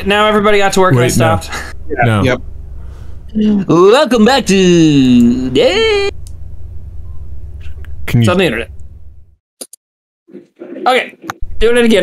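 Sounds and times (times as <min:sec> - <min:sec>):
open microphone line hum: 0:00.0 - 0:09.4.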